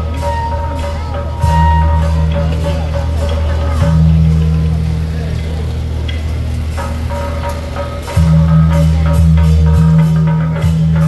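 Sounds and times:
band wind instruments holding note: 0:00.0 - 0:11.0
crowd voices: 0:00.0 - 0:11.0
low engine-like hum: 0:00.0 - 0:11.0.

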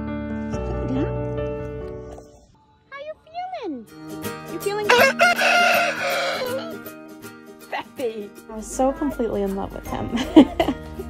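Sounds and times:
background music: 0:00.0 - 0:11.0
rooster crowing: 0:04.9 - 0:06.8.

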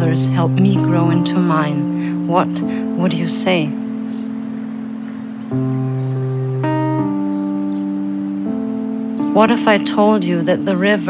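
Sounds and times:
instrumental music chords: 0:00.0 - 0:11.0.

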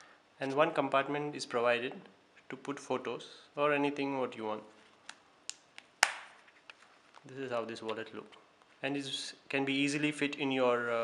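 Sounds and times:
wallet snapping shut: 0:05.1 - 0:06.4
wallet clicks and taps: 0:05.1 - 0:06.8.

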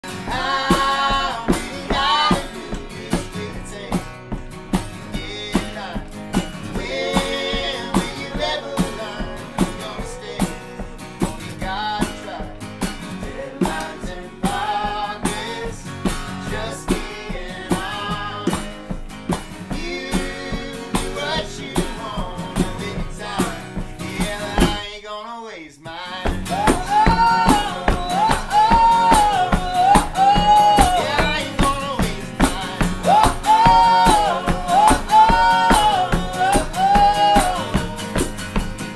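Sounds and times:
bongos played by hand: 0:00.0 - 0:24.8, 0:26.2 - 0:38.9
acoustic guitars strummed: 0:00.0 - 0:25.0, 0:25.9 - 0:38.9
person singing: 0:00.1 - 0:04.0, 0:06.7 - 0:12.6, 0:19.7 - 0:38.7.

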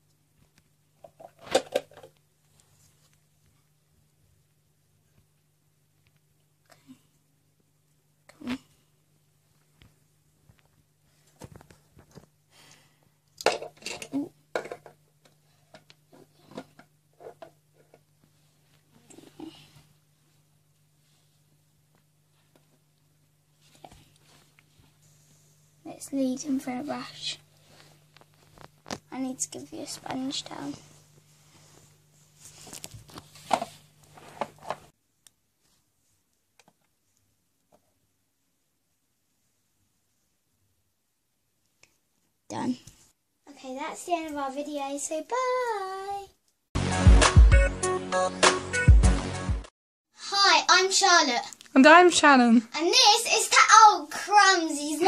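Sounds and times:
plastic toys clicking and knocking: 0:01.0 - 0:02.2, 0:13.4 - 0:15.9
plastic toy handling rustle: 0:32.4 - 0:34.9.

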